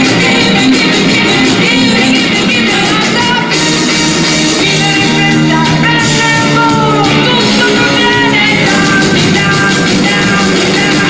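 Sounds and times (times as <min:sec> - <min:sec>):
bass guitar: 0:00.0 - 0:11.0
drums: 0:00.0 - 0:11.0
electric guitar: 0:00.0 - 0:11.0
woman singing: 0:00.0 - 0:11.0.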